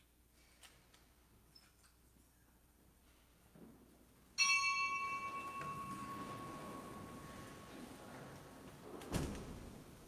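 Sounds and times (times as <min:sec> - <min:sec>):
small high-pitched bell ringing: 0:04.4 - 0:07.4.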